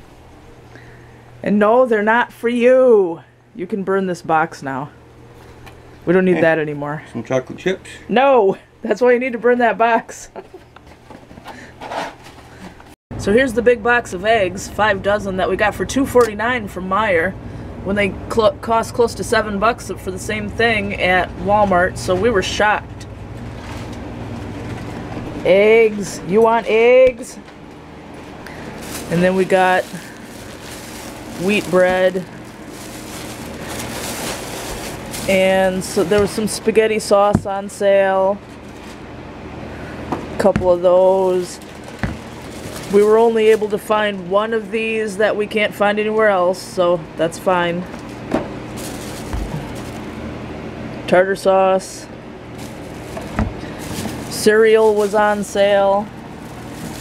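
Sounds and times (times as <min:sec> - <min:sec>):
low mechanical hum: 0:00.0 - 0:57.0
plastic shopping bags rustling: 0:23.4 - 0:25.1, 0:28.2 - 0:37.5, 0:38.4 - 0:39.0, 0:40.7 - 0:45.0, 0:47.9 - 0:50.2, 0:52.5 - 0:57.0.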